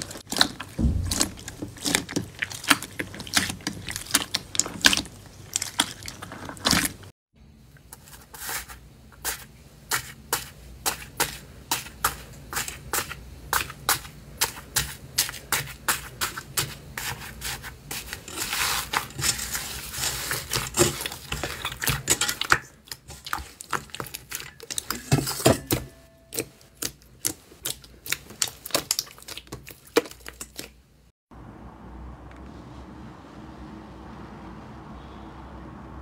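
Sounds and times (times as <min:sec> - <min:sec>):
crunchy slime crackling: 0:00.0 - 0:07.1.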